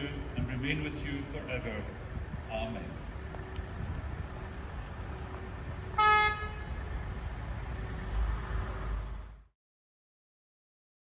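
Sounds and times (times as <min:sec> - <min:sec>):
low outdoor rumble: 0:00.0 - 0:09.5
vehicle horn toot: 0:06.0 - 0:06.8.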